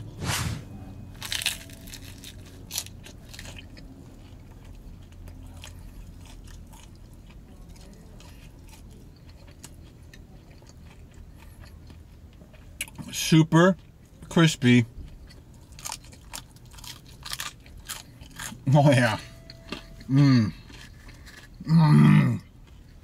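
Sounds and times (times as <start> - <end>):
person chewing: 1.1 - 13.1, 15.0 - 23.0
crispy pizza crust crunching: 1.2 - 13.1, 15.2 - 19.0, 19.6 - 21.9.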